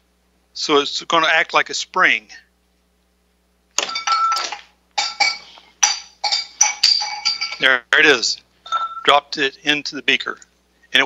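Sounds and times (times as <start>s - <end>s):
ball clinking into glass beaker: 3.8s - 7.7s.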